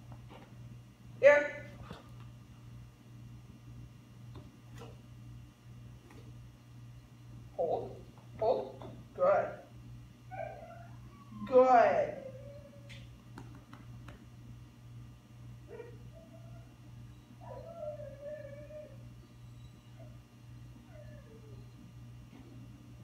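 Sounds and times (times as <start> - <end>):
dog whining: 10.3 - 13.1, 15.7 - 22.0.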